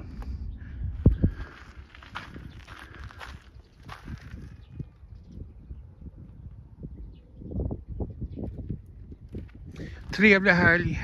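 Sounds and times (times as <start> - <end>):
soft footsteps outdoors: 0.0 - 11.0.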